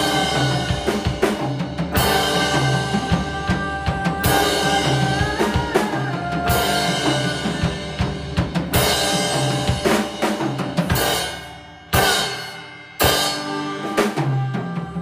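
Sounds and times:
drum kit: 0.0s - 15.0s.

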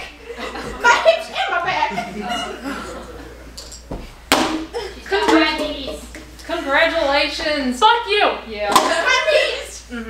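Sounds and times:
hand slapping a tabletop: 3.9s - 4.7s.

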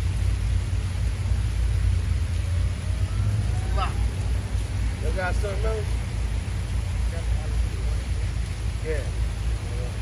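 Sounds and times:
water cascading over fountain wall: 0.0s - 10.0s.

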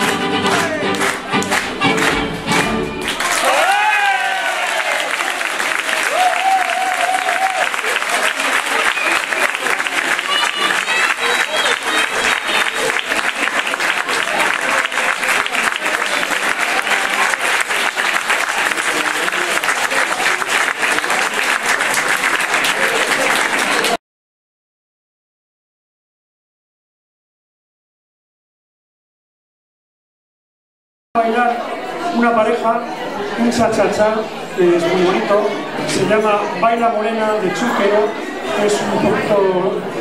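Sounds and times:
audience applauding: 0.0s - 24.0s.

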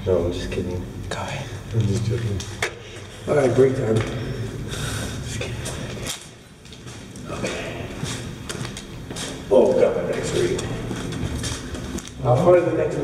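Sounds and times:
man talking: 0.0s - 2.6s, 3.2s - 4.6s, 7.2s - 8.0s, 9.4s - 11.0s, 12.2s - 13.0s
footsteps on concrete: 5.6s - 12.5s.

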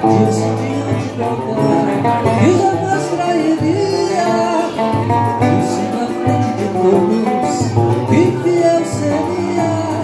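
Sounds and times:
guitar strumming: 0.0s - 10.0s
man singing: 0.0s - 10.0s
strummed small guitar: 0.0s - 10.0s.

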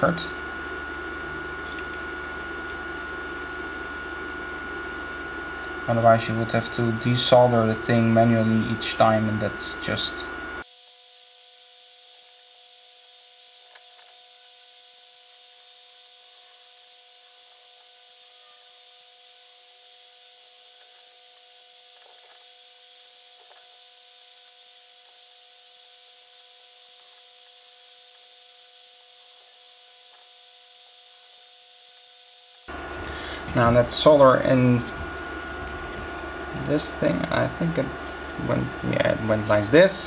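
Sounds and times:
constant high hiss: 0.0s - 40.0s
electrical hum: 0.0s - 40.0s.

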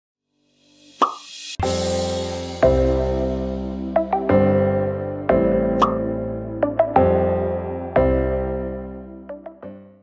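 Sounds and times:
background music chords: 0.7s - 10.0s
sharp pop: 1.0s - 1.4s, 5.8s - 6.0s.

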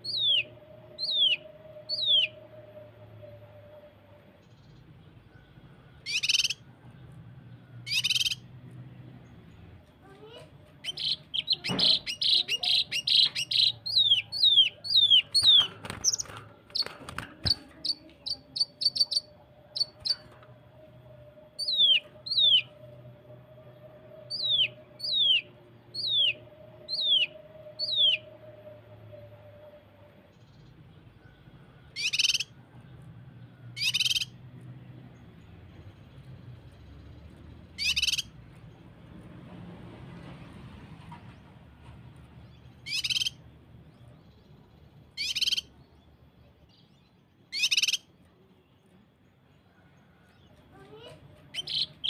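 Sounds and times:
bird whistling calls: 0.0s - 2.4s, 6.0s - 6.6s, 7.9s - 8.4s, 32.0s - 32.5s, 37.8s - 38.3s, 42.9s - 43.4s, 45.2s - 45.7s, 47.5s - 48.1s
bird harsh rasping notes: 10.1s - 20.4s.

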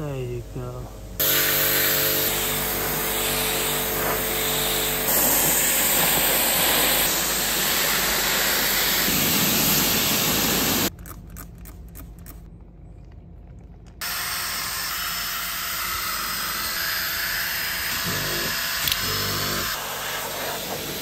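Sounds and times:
pressure washer spraying water: 1.2s - 10.9s, 16.1s - 21.0s.

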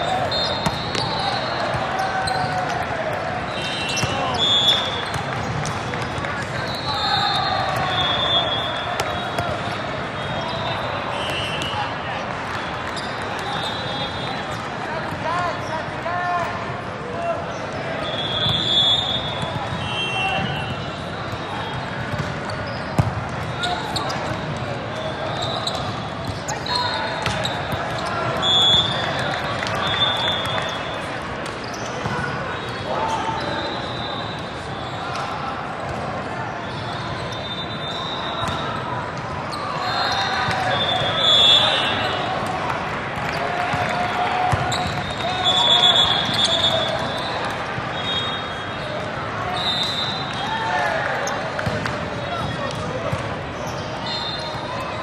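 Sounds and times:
hubbub of voices: 0.0s - 55.0s
shoes squeaking on court: 3.5s - 11.7s, 12.9s - 14.7s, 20.7s - 32.8s, 36.6s - 42.3s, 44.5s - 50.3s, 51.2s - 55.0s.

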